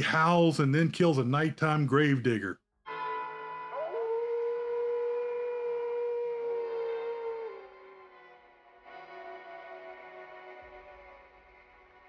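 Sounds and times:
werewolf howling: 3.7 - 8.0.

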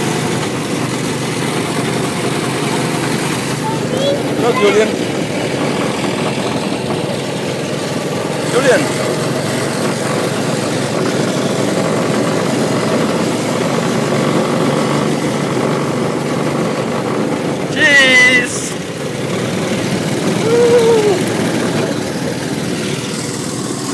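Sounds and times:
go-kart engine running: 0.0 - 23.9
high-pitched shout: 3.6 - 5.0, 20.4 - 21.3.

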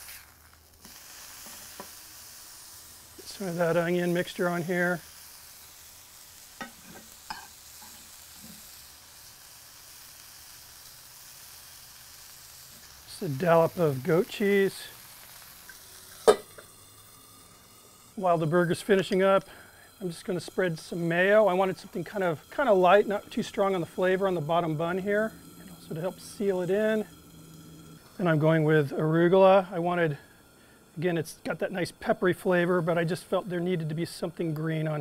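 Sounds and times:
meat sizzling on a griddle: 0.0 - 35.0
spatula clicking on griddle: 6.6 - 8.0.

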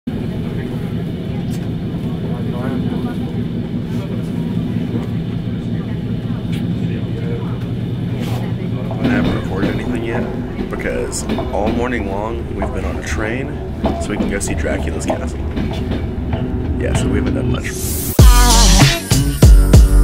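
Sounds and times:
faint voices: 0.1 - 18.1
train rumble and hum: 0.1 - 18.7
man speaking: 8.9 - 15.6, 16.7 - 17.9.

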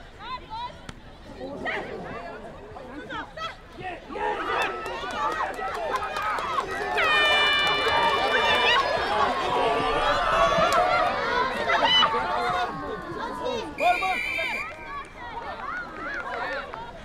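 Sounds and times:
crowd shouting and cheering: 3.8 - 17.0.

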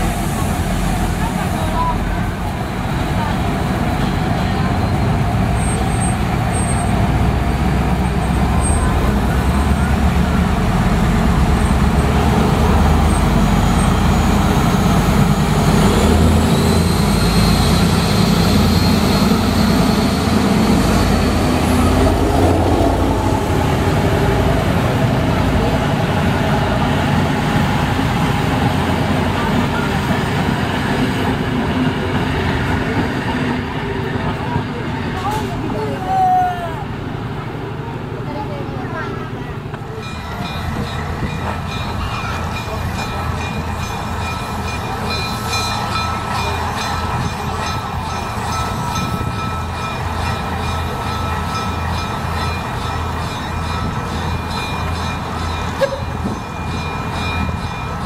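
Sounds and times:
diesel locomotive engine passing: 0.0 - 58.0
train carriages rolling past: 0.0 - 58.0.

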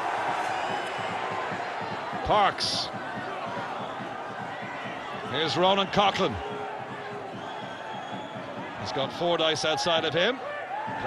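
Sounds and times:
stadium crowd murmur: 0.0 - 11.0.

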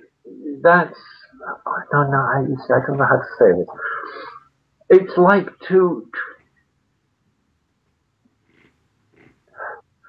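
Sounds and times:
man breathing: 3.7 - 4.5, 8.5 - 9.9.

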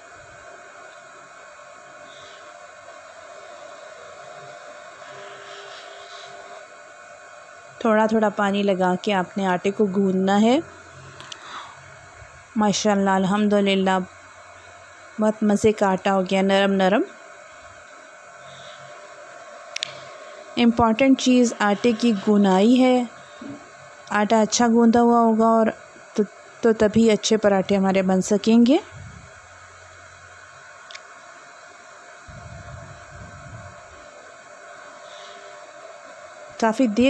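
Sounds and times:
steady hum and hiss: 0.0 - 37.0.

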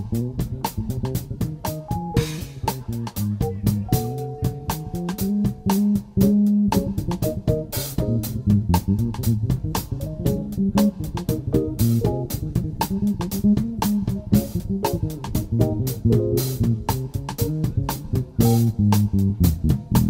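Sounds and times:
electric bass line: 0.0 - 20.0
jazz quartet playing: 0.0 - 20.0.

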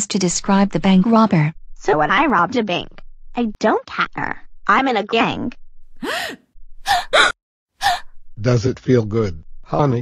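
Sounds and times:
person gasping: 6.0 - 8.0.

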